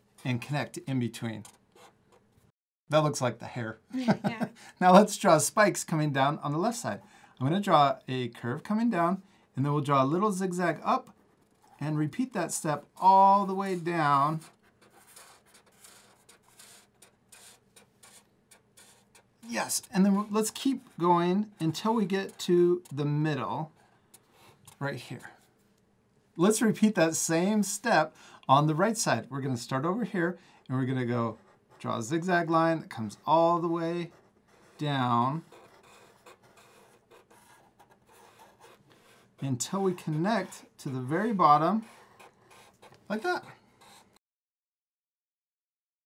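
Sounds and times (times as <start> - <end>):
markers scratching on paper: 1.4 - 2.3, 10.4 - 25.5, 30.8 - 44.2.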